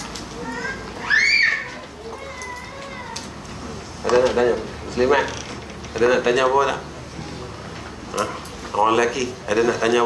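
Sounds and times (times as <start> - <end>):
faint high-pitched cry: 0.4 - 3.3.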